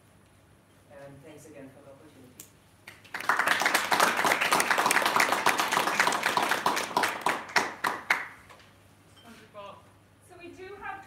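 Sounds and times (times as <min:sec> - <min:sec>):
audience applauding: 0:02.9 - 0:08.4.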